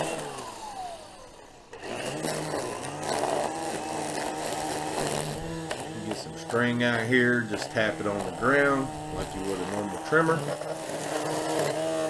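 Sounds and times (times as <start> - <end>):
electric string trimmer motor whining: 0.0 - 12.0
trimmer line cutting grass: 0.0 - 12.0.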